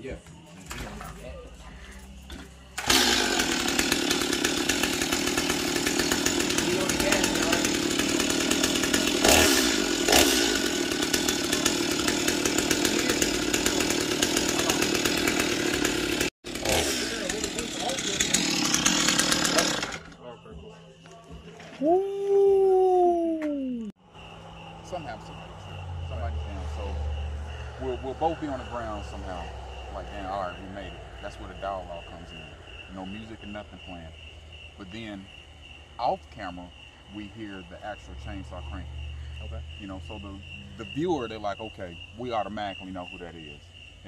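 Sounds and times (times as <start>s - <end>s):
chainsaw running: 1.8s - 20.4s, 23.9s - 44.0s.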